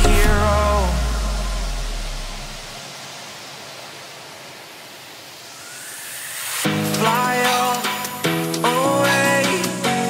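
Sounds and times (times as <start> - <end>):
low bass note: 0.0 - 2.7
steady hiss-like noise: 0.0 - 10.0.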